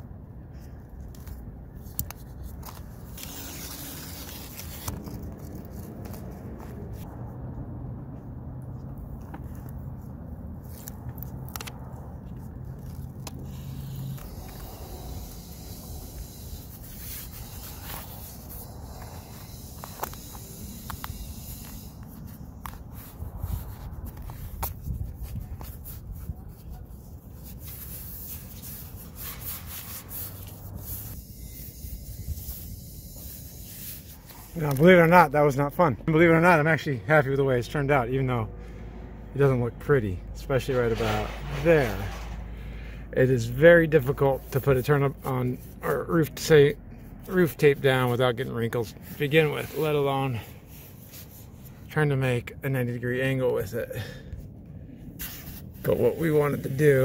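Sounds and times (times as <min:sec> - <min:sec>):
hands rubbing tape down: 0:00.6 - 0:07.1, 0:08.8 - 0:36.5, 0:43.9 - 0:51.9, 0:55.2 - 0:57.0
steady low rumble: 0:04.6 - 0:27.8, 0:37.8 - 0:46.1
brief scrapes and clicks: 0:40.4 - 0:46.4.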